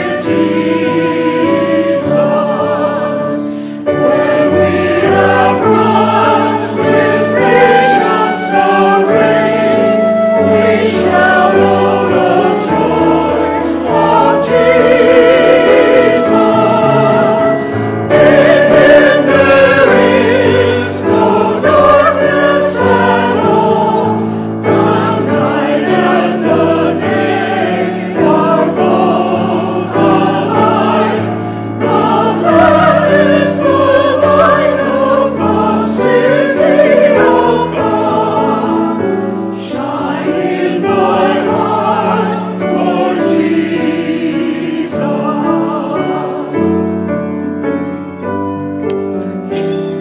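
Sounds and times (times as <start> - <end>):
church choir singing: 0.0 - 50.0
piano accompaniment: 0.0 - 50.0.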